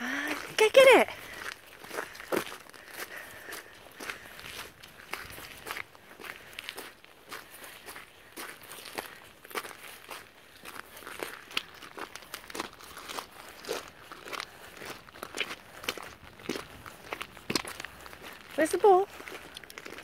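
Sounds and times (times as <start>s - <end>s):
footsteps crunching on shingle: 0.3s - 20.0s.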